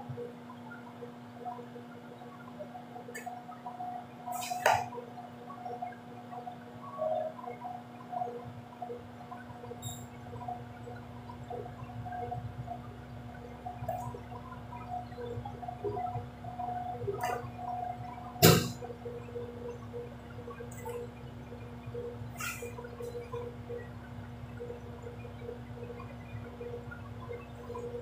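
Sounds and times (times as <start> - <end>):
steady low hum: 0.0 - 28.0
sharp knock: 18.4 - 18.8.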